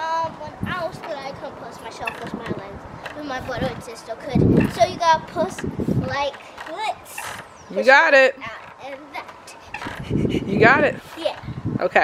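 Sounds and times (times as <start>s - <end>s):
child's high-pitched voice: 0.0s - 7.4s, 8.5s - 9.7s, 11.0s - 11.6s
faint steady background noise: 0.0s - 12.0s
woman speaking: 7.7s - 8.6s, 10.4s - 11.0s, 11.8s - 12.0s.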